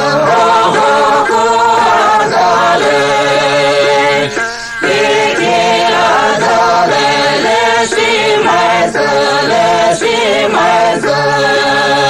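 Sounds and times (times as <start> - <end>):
voices chanting folk song: 0.0 - 12.0.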